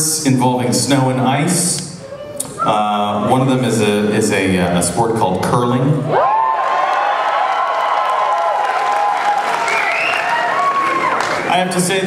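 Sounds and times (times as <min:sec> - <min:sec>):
high woo whoops: 0:06.1 - 0:11.4
audience applauding and cheering: 0:06.1 - 0:12.0.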